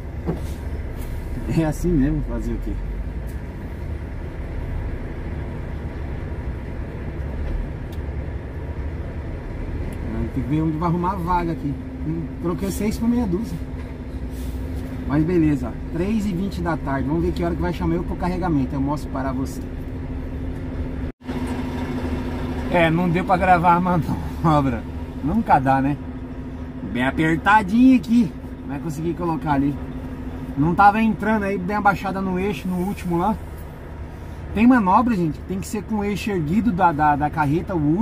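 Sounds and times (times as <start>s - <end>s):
diesel truck engine idling: 0.0s - 38.0s.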